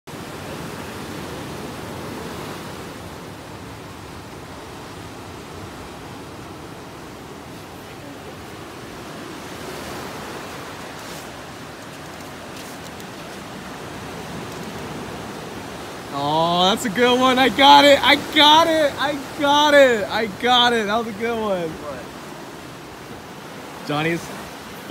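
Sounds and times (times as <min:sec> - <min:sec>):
ocean surf washing ashore: 0:00.1 - 0:24.9.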